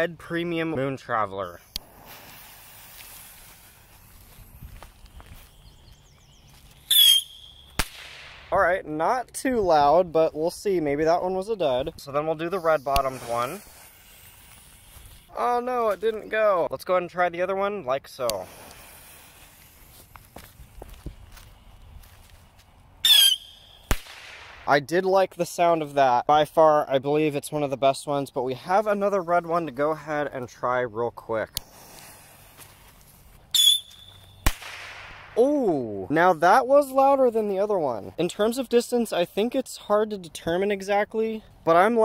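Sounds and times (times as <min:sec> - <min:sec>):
butane torch hissing: 0:01.6 - 0:04.1, 0:13.0 - 0:15.3, 0:18.4 - 0:20.0
faint fuse crackle: 0:01.6 - 0:05.6, 0:12.4 - 0:16.3, 0:18.2 - 0:22.7
shrill rocket whistle: 0:06.9 - 0:07.8, 0:23.0 - 0:23.9, 0:33.5 - 0:34.5.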